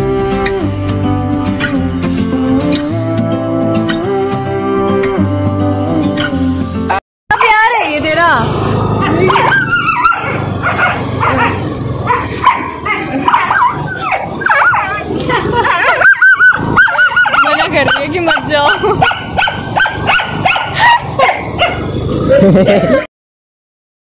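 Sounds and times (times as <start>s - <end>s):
dogs barking and yelping: 7.3s - 23.1s.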